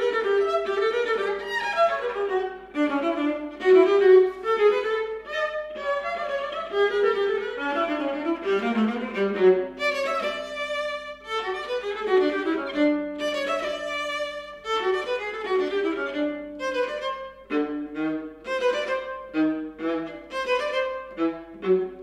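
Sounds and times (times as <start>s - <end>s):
solo viola playing: 0.0s - 22.0s.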